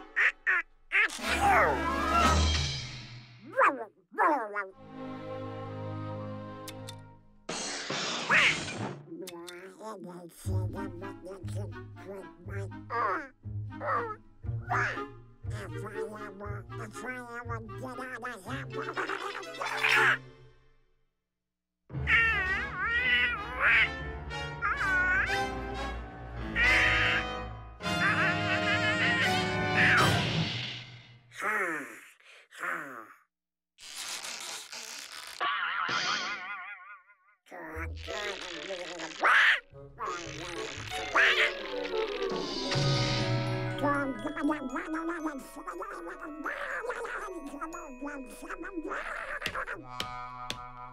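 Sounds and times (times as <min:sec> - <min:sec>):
cartoon duck squawking: 0:00.1 - 0:01.4, 0:13.0 - 0:15.1, 0:16.2 - 0:20.2, 0:22.0 - 0:25.6, 0:26.5 - 0:30.2, 0:37.6 - 0:42.4, 0:44.4 - 0:50.9
cartoon crash clatter: 0:07.5 - 0:09.0.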